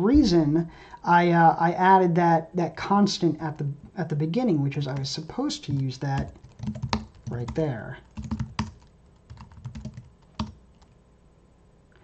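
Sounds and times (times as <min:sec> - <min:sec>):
typing on computer keyboard: 0:06.2 - 0:11.0.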